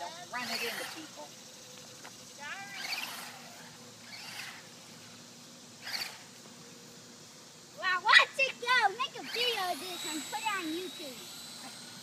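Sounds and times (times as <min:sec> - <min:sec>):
high-pitched motor burst: 0:00.0 - 0:01.3, 0:02.3 - 0:06.4, 0:08.7 - 0:12.0
distant rc truck hum: 0:00.0 - 0:12.0.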